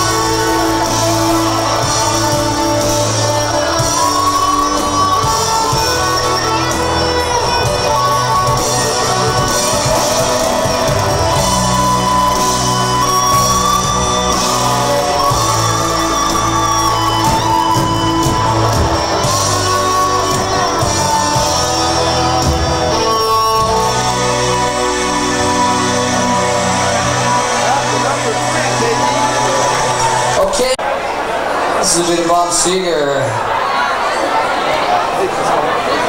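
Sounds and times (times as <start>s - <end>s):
live rock band playing: 0.0s - 30.5s.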